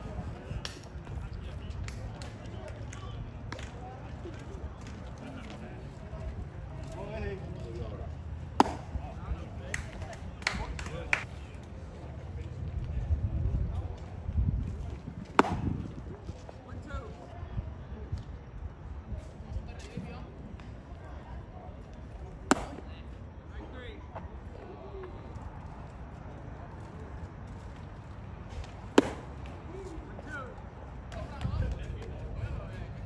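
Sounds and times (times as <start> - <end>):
voices talking: 0.0 - 33.0
baseball smacking into mitt: 8.5 - 11.3, 15.2 - 16.1, 22.5 - 22.9, 28.5 - 29.6.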